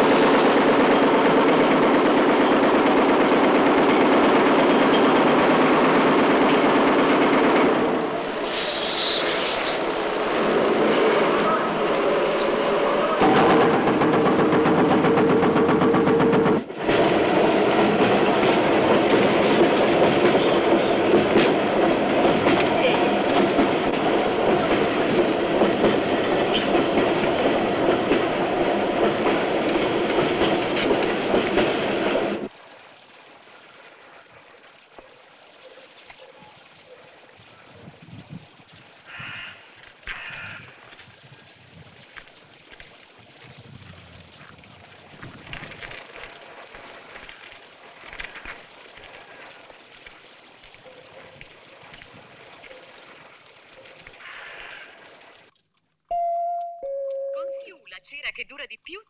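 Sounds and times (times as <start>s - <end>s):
loud rumbling and clattering noise: 9.8s - 32.5s.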